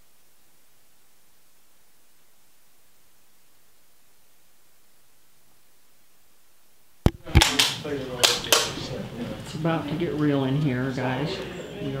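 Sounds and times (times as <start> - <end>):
faint hiss: 0.0 - 7.0
sharp clicks: 7.1 - 8.7
people talking: 7.1 - 12.0.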